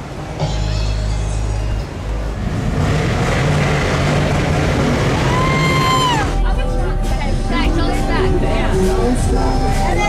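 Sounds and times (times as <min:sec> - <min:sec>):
trucks driving by: 0:00.0 - 0:10.0.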